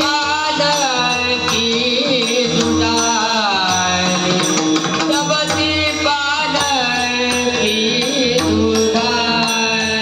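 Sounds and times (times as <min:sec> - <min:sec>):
hand drum: 0:00.0 - 0:10.0
men singing devotional chant: 0:00.0 - 0:10.0.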